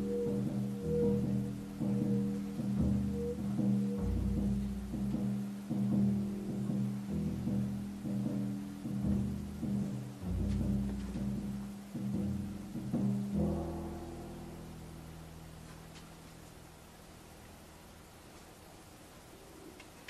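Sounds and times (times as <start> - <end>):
plucked double bass: 0.0 - 16.0
drum kit toms: 0.0 - 16.2.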